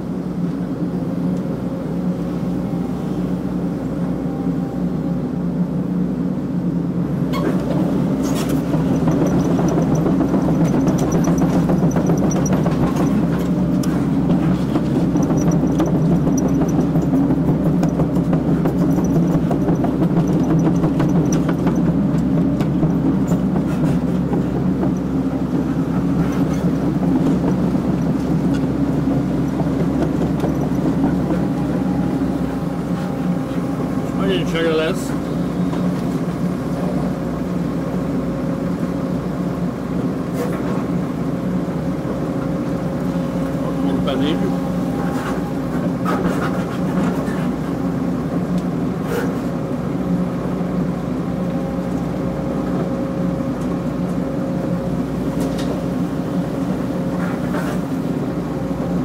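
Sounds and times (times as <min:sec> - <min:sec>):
diesel engine and hydraulics: 0:00.0 - 0:59.0.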